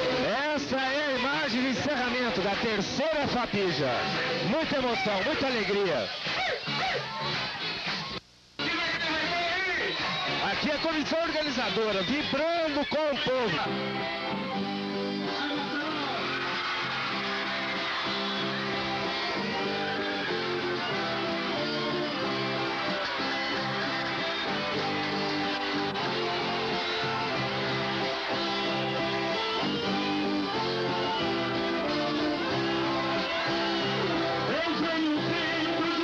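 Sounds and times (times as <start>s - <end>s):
strummed guitar music: 13.0s - 36.0s.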